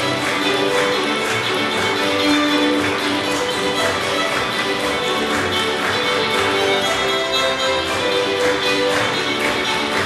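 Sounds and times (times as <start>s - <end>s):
fiddle orchestra playing a reel: 0.0s - 10.0s
steady beat of taps: 0.0s - 10.0s.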